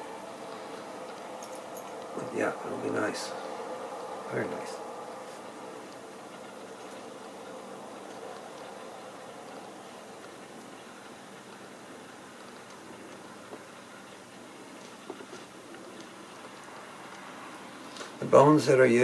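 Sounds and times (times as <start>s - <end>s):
room tone hiss and hum: 0.0s - 19.0s.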